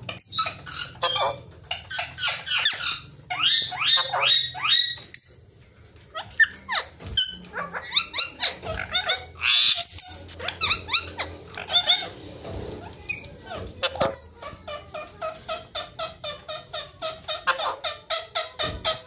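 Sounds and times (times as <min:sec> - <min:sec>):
parakeets squawking: 0:00.0 - 0:19.0.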